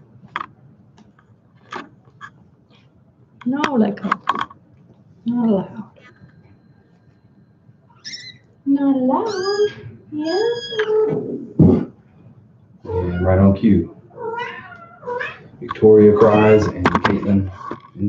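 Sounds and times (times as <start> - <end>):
cat meowing: 12.9 - 16.9.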